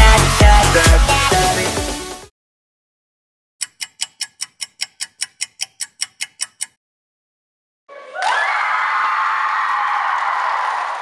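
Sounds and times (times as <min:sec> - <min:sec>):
rapid clock-like ticking: 0:03.6 - 0:06.8.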